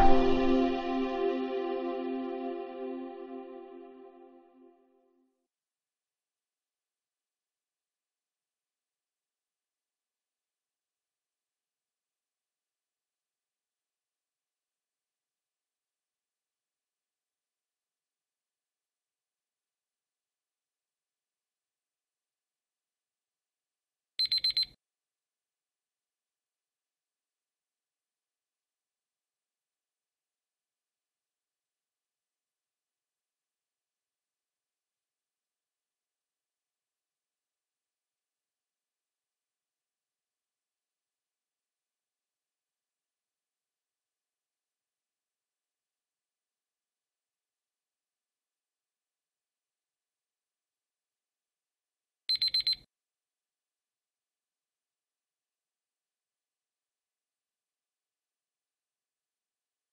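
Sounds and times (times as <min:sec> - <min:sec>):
high-pitched electronic beeps: 0:00.0 - 0:01.4
high-pitched electronic timer beeps: 0:52.3 - 0:52.8.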